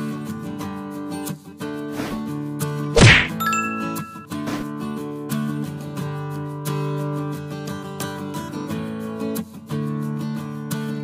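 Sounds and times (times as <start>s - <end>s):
bright bell ding: 3.3s - 4.5s
strummed acoustic guitar music: 3.8s - 11.0s.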